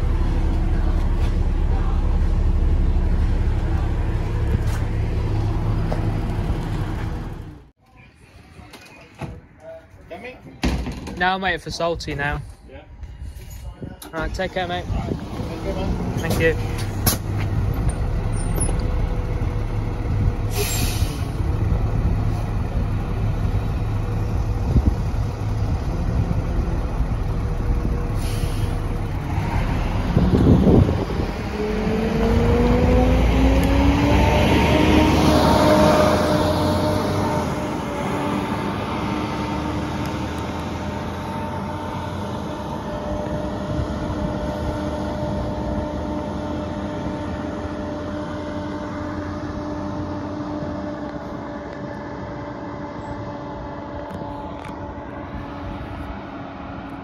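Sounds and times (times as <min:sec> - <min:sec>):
engine and gearbox whine: 0:00.0 - 0:07.8, 0:14.0 - 0:57.0
bus engine idling: 0:00.0 - 0:10.6, 0:11.2 - 0:32.8, 0:35.0 - 0:57.0
air-brake release burst: 0:20.5 - 0:21.4, 0:28.1 - 0:28.9.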